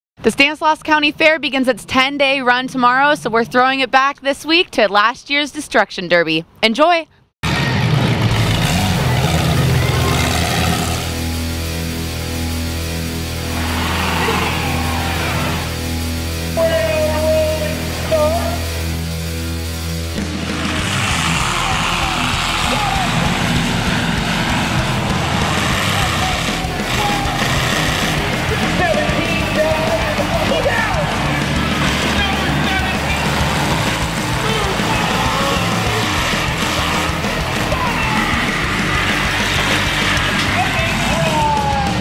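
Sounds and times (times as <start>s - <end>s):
car engine revving: 7.4s - 42.0s
rock music with distorted guitars: 7.4s - 42.0s.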